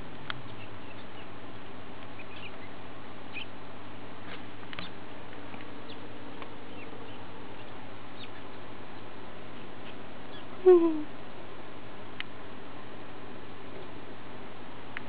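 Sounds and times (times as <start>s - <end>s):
low background hum: 0.0s - 15.0s.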